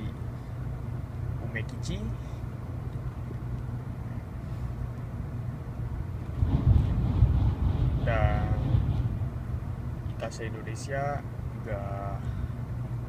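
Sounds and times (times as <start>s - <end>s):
train rumbling: 6.1s - 10.6s.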